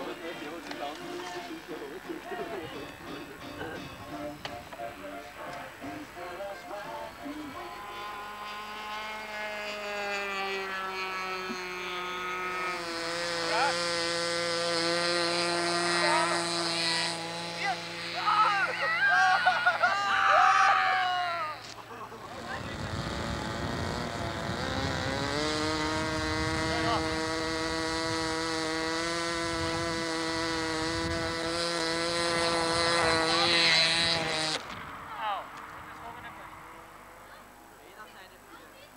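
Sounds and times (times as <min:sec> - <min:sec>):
model aeroplane engine buzzing: 0:00.0 - 0:37.4
voices: 0:00.0 - 0:38.9
wind rumbling on microphone: 0:22.3 - 0:36.6.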